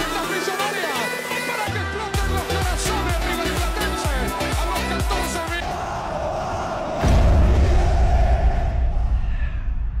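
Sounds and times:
stadium crowd roaring: 5.5 - 9.5
deep low boom: 6.9 - 10.0.

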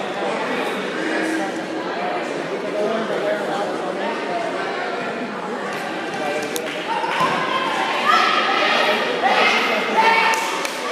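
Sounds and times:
people talking: 0.0 - 10.9.

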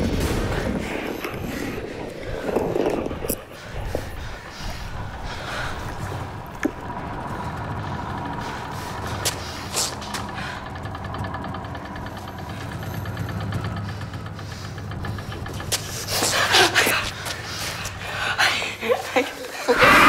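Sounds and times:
low engine-like rumble: 0.0 - 19.7
faint hum: 0.0 - 20.0.

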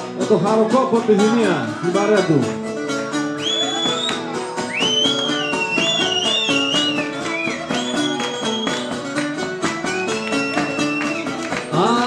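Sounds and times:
plucked string accompaniment: 0.0 - 12.0.

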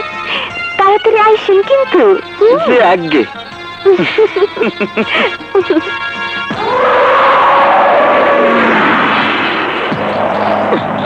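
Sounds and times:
rushing noise with falling tones: 6.7 - 11.0.

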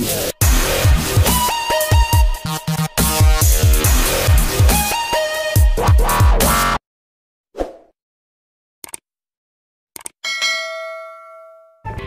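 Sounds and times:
notification bell ding: 10.2 - 11.9.

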